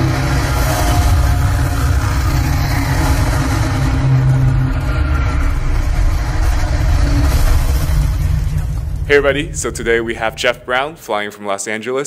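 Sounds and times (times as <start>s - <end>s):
dense low rumble: 0.0s - 11.2s.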